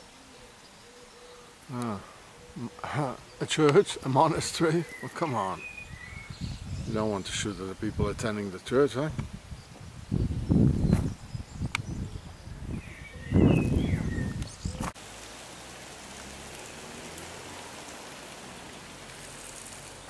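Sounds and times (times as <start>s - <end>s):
outdoor background hiss: 0.0s - 20.0s
wind buffeting microphone: 5.7s - 15.0s.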